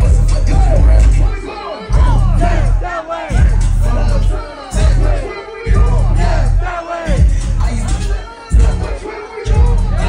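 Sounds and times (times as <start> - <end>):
loud hip hop with booming bass: 0.0 - 10.0
crowd shouting along: 0.4 - 10.0.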